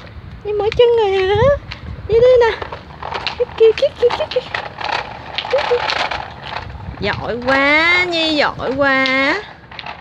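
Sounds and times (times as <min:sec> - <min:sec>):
wheels clattering on asphalt: 0:00.0 - 0:10.0
wooden blocks rattling: 0:02.5 - 0:10.0.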